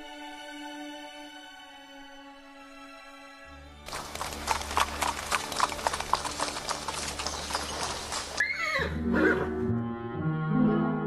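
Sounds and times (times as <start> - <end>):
horse hooves clip-clopping: 3.9 - 8.4
horse whinnying: 4.4 - 9.5.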